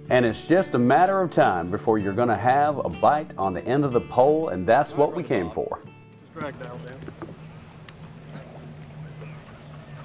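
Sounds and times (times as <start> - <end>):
faint wind: 5.8 - 10.0
water noise: 6.4 - 10.0.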